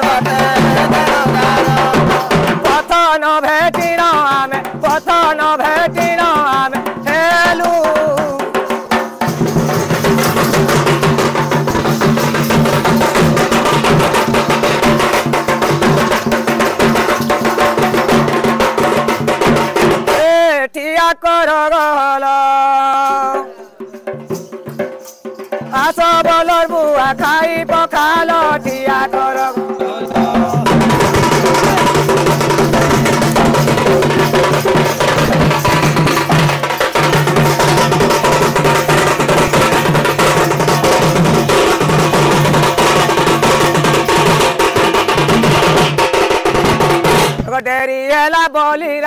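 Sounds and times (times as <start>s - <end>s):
person singing: 0.0s - 9.2s, 20.0s - 24.3s, 25.6s - 44.4s, 47.3s - 49.0s
drums beaten fast: 0.0s - 20.5s, 23.0s - 47.7s.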